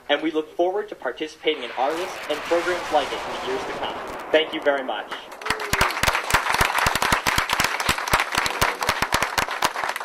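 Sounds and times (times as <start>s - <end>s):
audience applauding: 5.4s - 10.0s.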